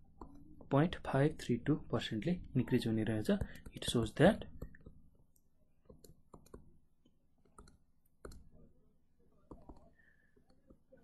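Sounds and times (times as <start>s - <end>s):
stylus tapping on tablet: 3.3s - 5.1s, 5.8s - 6.8s, 7.4s - 8.6s, 9.5s - 11.0s.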